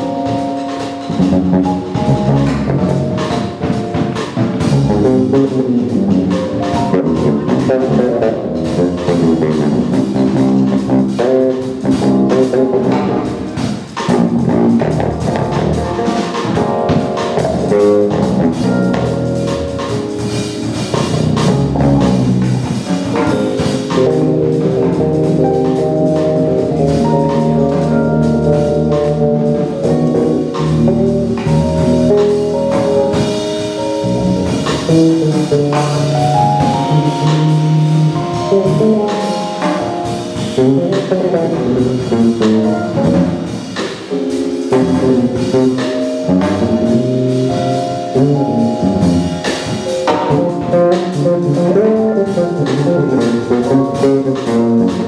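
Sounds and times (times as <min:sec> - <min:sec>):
bass line: 0:00.0 - 0:55.0
drum kit steady beat: 0:00.0 - 0:55.0
keyboard: 0:00.0 - 0:55.0.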